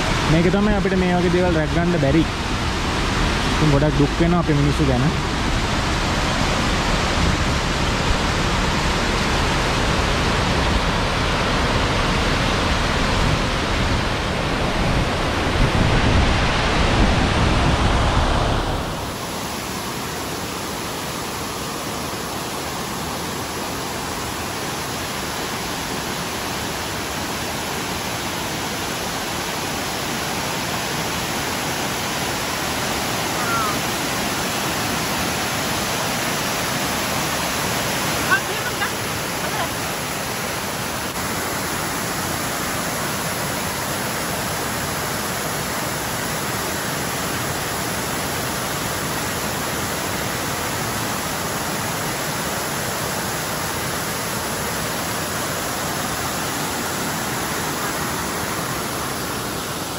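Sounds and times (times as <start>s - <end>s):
rushing water over rocks: 0.0s - 59.9s.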